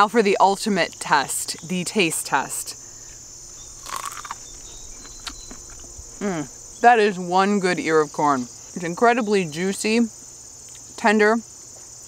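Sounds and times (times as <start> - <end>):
insects chirring: 0.0 - 12.0
crisp bite into corn: 3.0 - 6.5
chewing clicks: 3.8 - 6.0.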